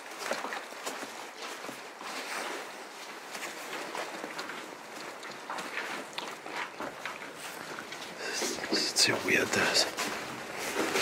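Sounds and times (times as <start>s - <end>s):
footsteps crunching on rough ground: 0.0s - 11.0s.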